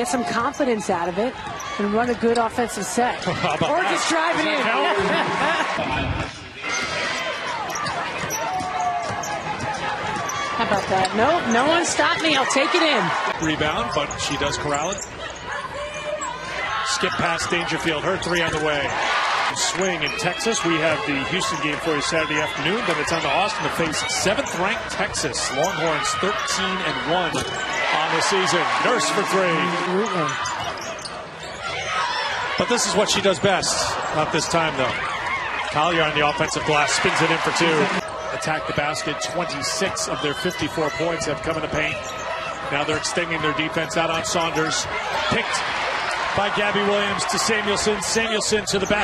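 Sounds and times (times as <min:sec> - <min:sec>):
arena crowd noise: 0:00.0 - 0:49.0
sneakers squeaking: 0:00.0 - 0:49.0.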